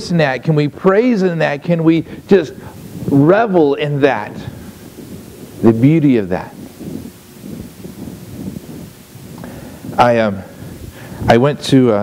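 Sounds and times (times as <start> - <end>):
faint low rumble: 1.7 - 12.0.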